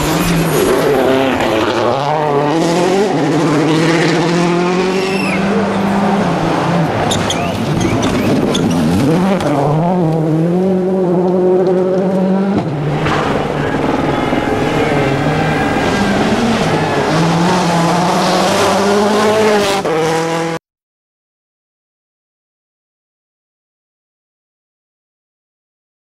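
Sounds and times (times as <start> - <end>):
rally car engines at full throttle: 0.0 - 20.6.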